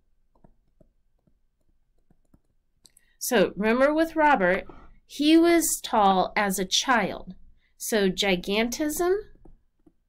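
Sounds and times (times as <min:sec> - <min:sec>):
stylus tapping on tablet screen: 0:00.3 - 0:04.9, 0:09.3 - 0:10.0.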